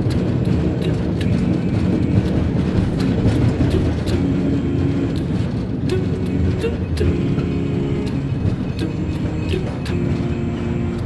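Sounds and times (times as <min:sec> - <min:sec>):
cable car low rumble: 0:00.0 - 0:11.0.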